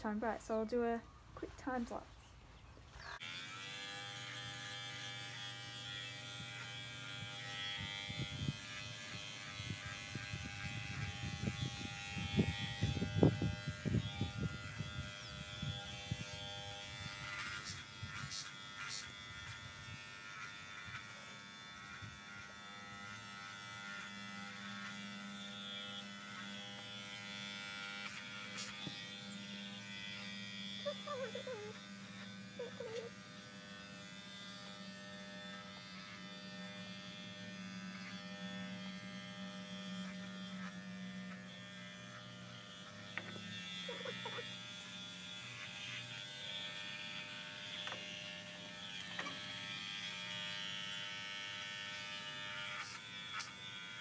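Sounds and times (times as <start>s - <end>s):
electric clippers buzzing: 3.0s - 54.0s.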